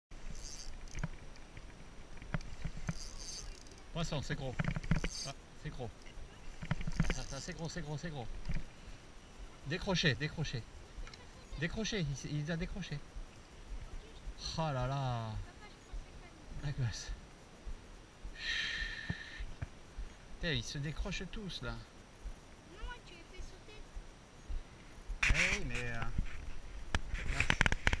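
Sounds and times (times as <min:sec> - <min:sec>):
spinning reel clicks: 0:00.3 - 0:01.2, 0:02.3 - 0:03.9, 0:04.6 - 0:05.4, 0:06.8 - 0:07.6
high hiss: 0:05.1 - 0:28.0.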